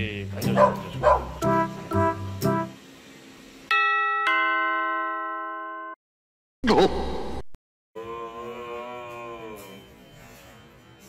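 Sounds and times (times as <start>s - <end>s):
long moaning voice: 8.0s - 9.9s.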